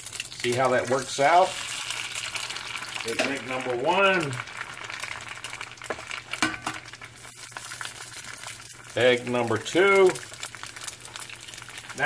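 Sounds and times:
eggs sizzling in oil: 0:00.0 - 0:12.0.

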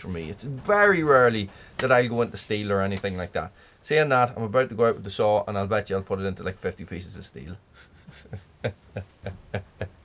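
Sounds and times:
man chuckling: 0:07.8 - 0:10.0.

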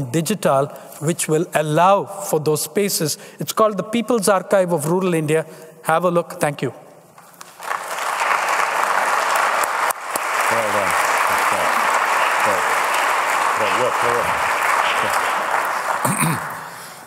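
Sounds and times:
man talking: 0:00.0 - 0:06.8, 0:10.4 - 0:12.7, 0:13.6 - 0:15.4
audience applauding: 0:07.2 - 0:17.0.

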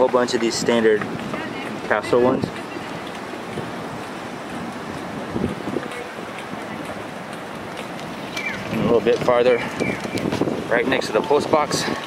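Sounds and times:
street noise hiss: 0:00.0 - 0:12.0
wind rumbling on microphone: 0:00.0 - 0:12.0.

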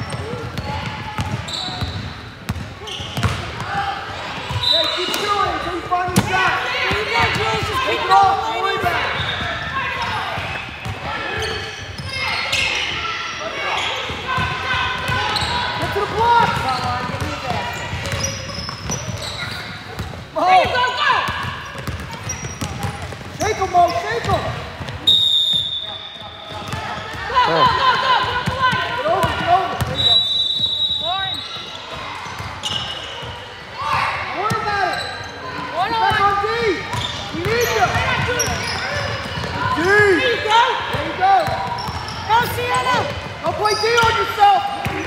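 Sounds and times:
basketball dribbling: 0:00.0 - 0:03.4, 0:14.2 - 0:20.2, 0:21.4 - 0:25.0, 0:26.2 - 0:30.0
sneakers squeaking on hardwood: 0:00.0 - 0:03.6, 0:04.2 - 0:45.0.

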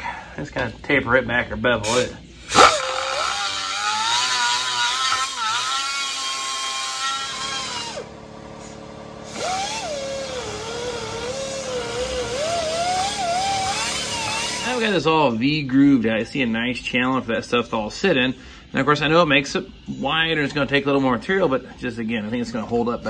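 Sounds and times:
rotary tool grinding plastic: 0:02.5 - 0:14.8.

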